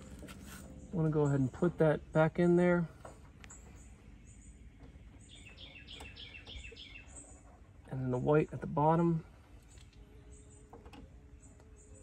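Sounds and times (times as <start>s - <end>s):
small bird chirping: 3.4s - 7.5s, 9.6s - 12.0s.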